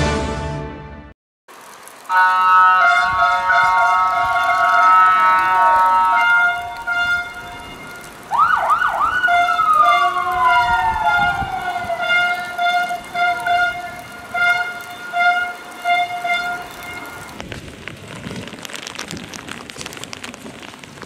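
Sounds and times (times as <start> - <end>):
police siren: 2.1 - 17.4.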